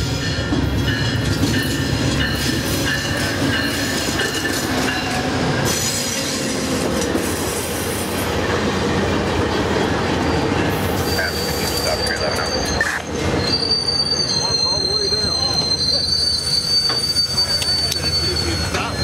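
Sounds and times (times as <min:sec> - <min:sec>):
train wheels rumbling on rail: 0:00.0 - 0:19.0
high-pitched brake squealing: 0:10.2 - 0:19.0.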